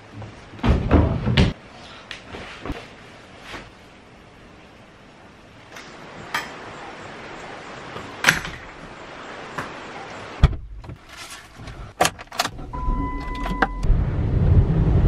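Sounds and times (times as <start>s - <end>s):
steady rain falling: 1.6s - 10.4s
low car rumble: 12.5s - 15.0s
car warning chime: 12.7s - 13.9s.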